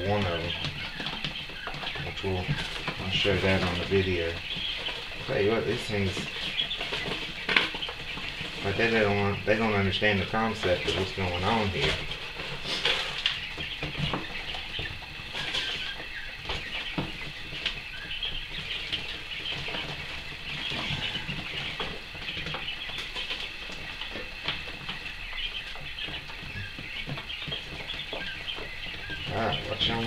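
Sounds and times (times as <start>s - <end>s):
young quail peeping: 0.0s - 30.0s
bedding litter scraping and rustling: 1.9s - 24.7s.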